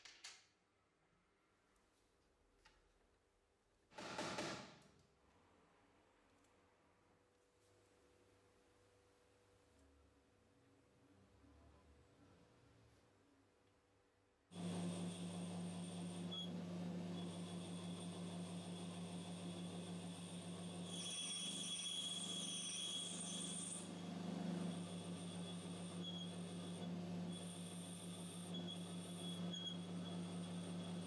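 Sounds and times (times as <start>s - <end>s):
high whine of metal cutting: 14.6s - 31.0s
lathe motor hum: 14.6s - 31.0s.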